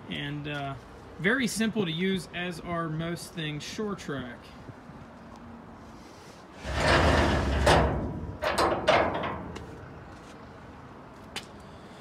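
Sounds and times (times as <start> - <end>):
metal ramps scraping: 6.5 - 9.6
metal ramps clanking: 6.6 - 9.6.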